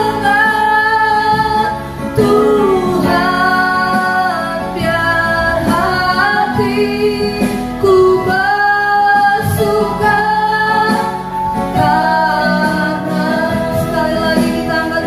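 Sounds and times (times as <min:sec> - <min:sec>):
electronic keyboard: 0:00.0 - 0:15.0
women singing: 0:00.0 - 0:15.0.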